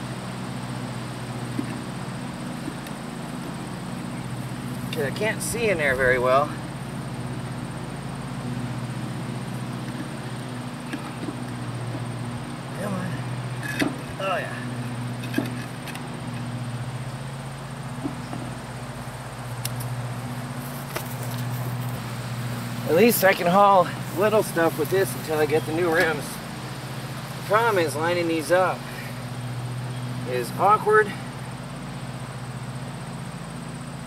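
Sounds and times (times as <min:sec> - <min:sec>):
low mechanical hum: 0:00.0 - 0:34.0.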